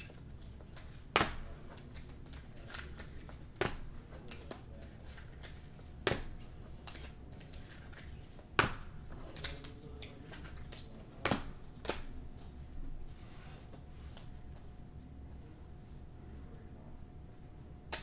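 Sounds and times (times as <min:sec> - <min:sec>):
cards rustling: 0:00.4 - 0:08.4, 0:09.1 - 0:12.5.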